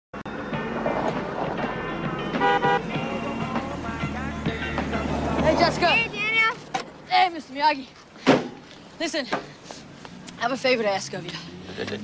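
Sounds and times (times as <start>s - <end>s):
vehicle horn toots: 2.2s - 3.0s.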